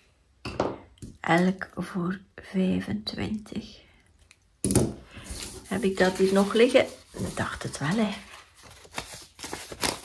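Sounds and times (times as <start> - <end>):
banknotes rustling: 5.1 - 10.0.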